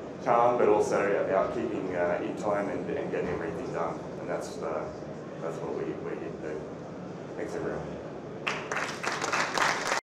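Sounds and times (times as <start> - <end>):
audience applauding: 8.4 - 10.0.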